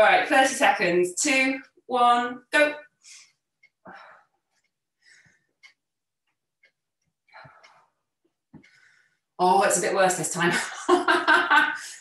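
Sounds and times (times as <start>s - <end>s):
effortful breaths: 2.9s - 5.8s, 7.2s - 9.4s.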